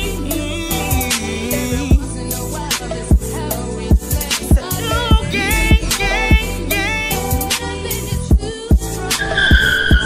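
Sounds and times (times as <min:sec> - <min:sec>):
music with heavy drum beat: 0:00.0 - 0:10.0.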